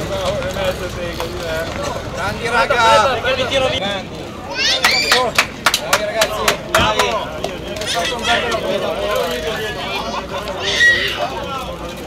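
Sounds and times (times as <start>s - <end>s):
voices talking: 0.0s - 12.0s
people clapping: 4.6s - 8.6s.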